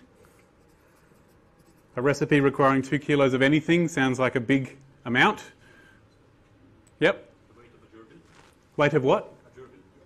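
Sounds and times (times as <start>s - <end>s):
pencil scratching on paper: 0.0s - 2.6s.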